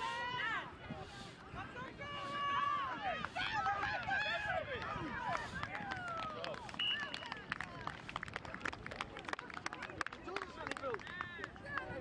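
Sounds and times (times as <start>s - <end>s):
people clapping: 3.2s - 12.0s.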